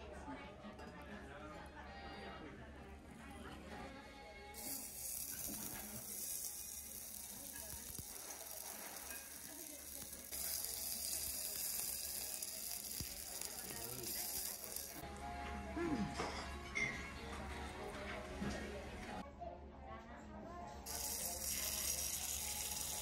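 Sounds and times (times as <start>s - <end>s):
meat sizzling on hot iron plate: 4.6s - 15.0s, 20.9s - 23.0s.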